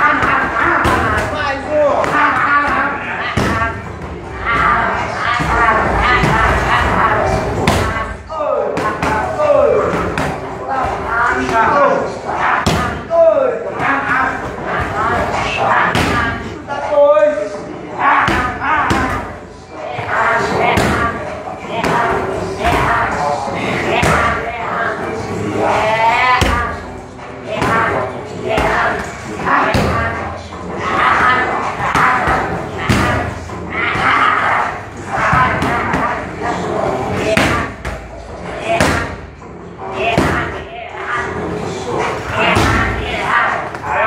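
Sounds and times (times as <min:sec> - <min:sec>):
voices: 0:00.0 - 0:44.0.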